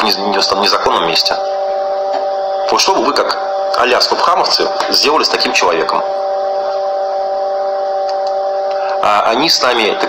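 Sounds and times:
steady held tone: 0.0s - 10.0s.

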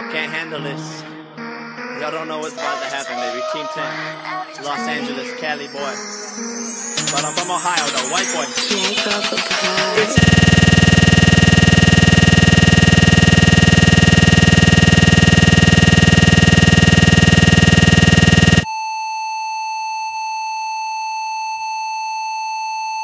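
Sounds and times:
high-pitched beep tone: 7.0s - 18.7s
harsh electronic buzz: 8.8s - 18.7s.

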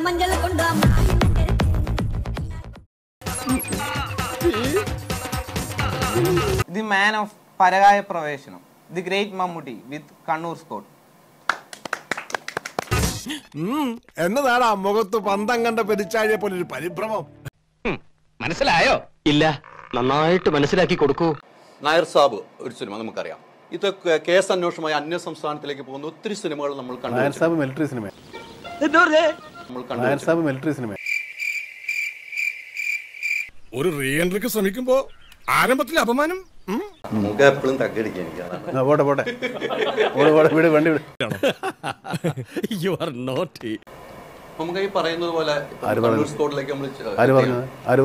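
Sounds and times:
hand claps: 11.5s - 13.1s
cricket chirping: 31.0s - 33.6s.

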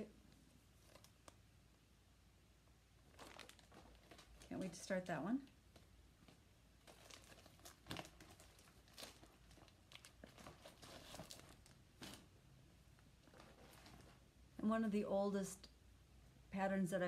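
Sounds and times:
plastic bag crinkling: 3.0s - 12.4s, 13.0s - 14.2s.

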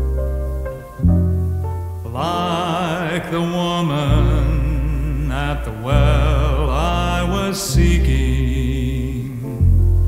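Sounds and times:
low bass: 0.0s - 2.3s, 4.0s - 10.0s.

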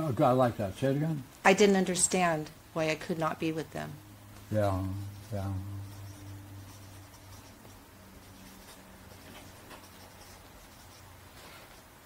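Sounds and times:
low steady hum: 0.0s - 12.0s
marker scratching on paper: 5.0s - 12.0s.

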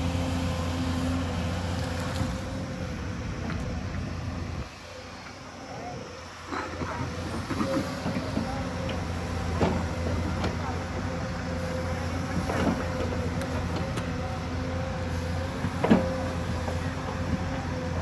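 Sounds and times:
excavator diesel engine whining: 0.0s - 18.0s.

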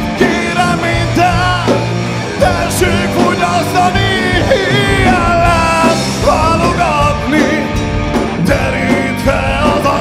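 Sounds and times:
bass guitar: 0.0s - 10.0s
drum kit with cymbals: 0.0s - 10.0s.

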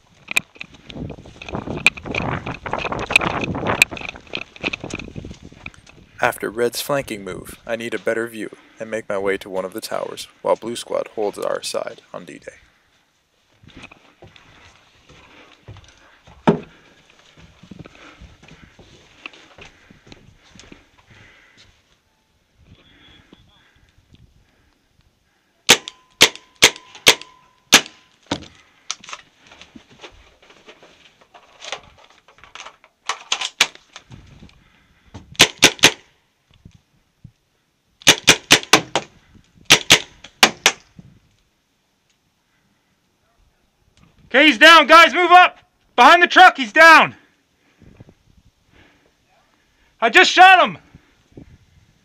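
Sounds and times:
shuffling movement: 13.2s - 22.0s
paintball marker shots: 35.4s - 36.0s.

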